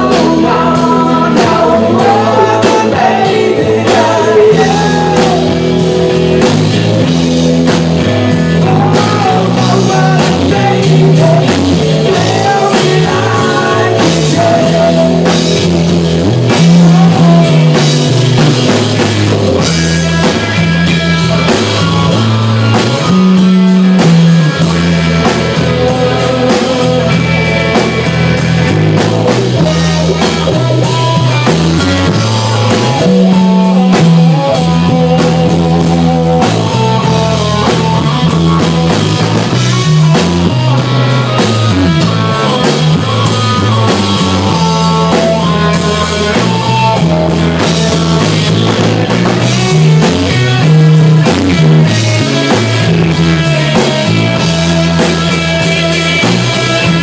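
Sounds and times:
live rock band playing: 0.0s - 57.0s.

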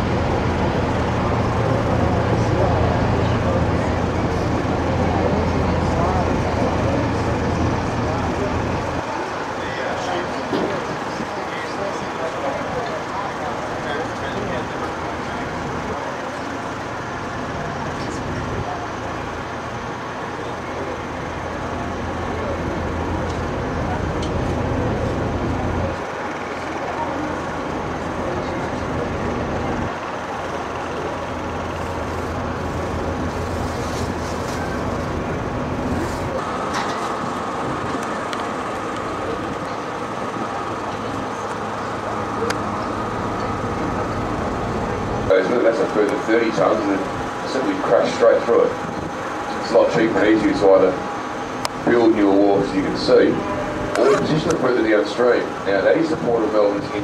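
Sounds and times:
boat engine humming: 0.0s - 57.0s
steady high tone: 11.3s - 57.0s.

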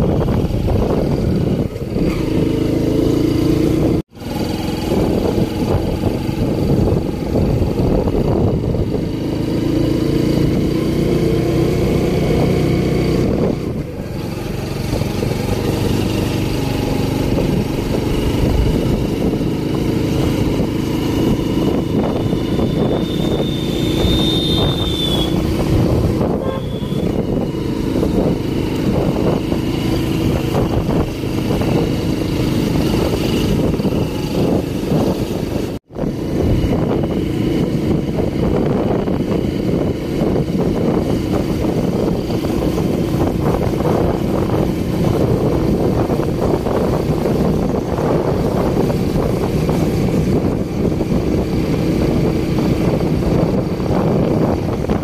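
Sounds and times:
scooter engine running: 0.0s - 55.0s
wind rush over microphone: 0.0s - 55.0s.

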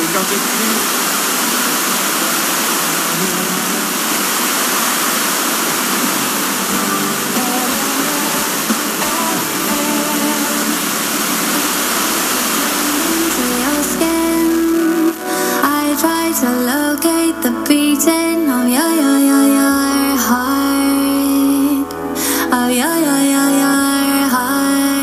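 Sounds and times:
radio static hiss: 0.0s - 22.3s
faint song on radio: 5.8s - 25.0s.

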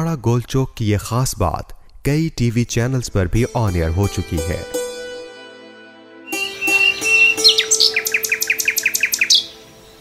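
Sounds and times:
background music: 3.1s - 10.0s
bird chirping: 6.3s - 10.0s.

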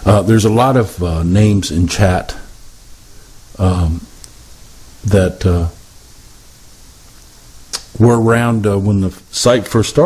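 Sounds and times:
man speaking: 0.0s - 2.6s, 3.5s - 4.2s, 5.0s - 5.8s, 7.8s - 10.0s
microphone hiss: 0.0s - 10.0s.

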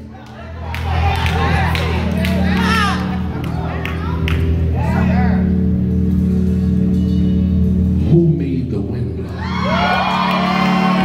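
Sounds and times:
organ chords: 0.0s - 11.0s.

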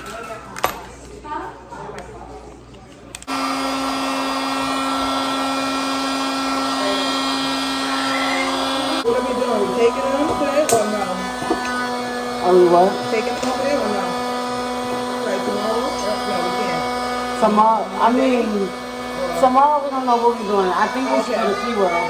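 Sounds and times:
electric air pump humming: 3.2s - 22.0s.

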